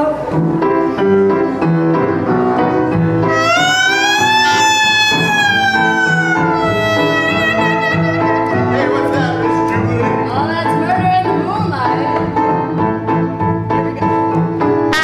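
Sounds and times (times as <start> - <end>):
double bass: 0.0 - 15.0
piano: 0.0 - 15.0
horn holding long note: 3.3 - 8.6.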